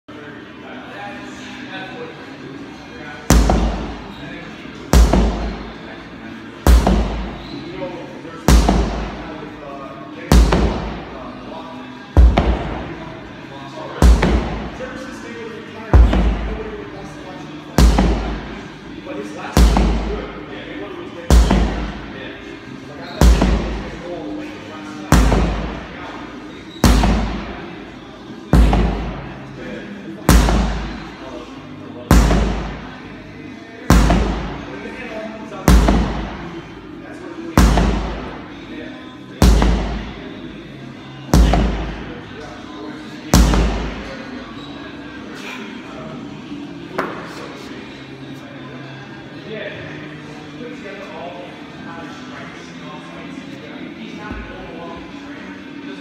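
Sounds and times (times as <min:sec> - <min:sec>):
sledgehammer thudding on rubber tyres: 0:05.0 - 0:05.6, 0:06.7 - 0:07.4, 0:12.2 - 0:12.8, 0:14.0 - 0:14.7, 0:16.0 - 0:16.6, 0:23.2 - 0:23.9.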